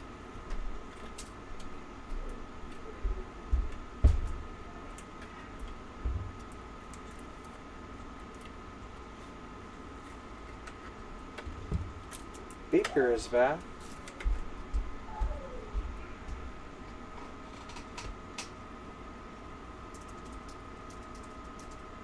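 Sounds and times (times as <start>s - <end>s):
faint high-pitched hum: 0.0s - 22.0s.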